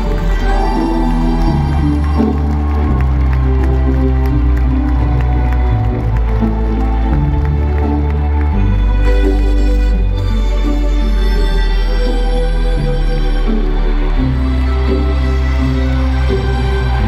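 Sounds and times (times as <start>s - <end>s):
crowd cheering: 0.0s - 10.9s, 12.8s - 17.0s
deep bass line: 0.0s - 17.0s.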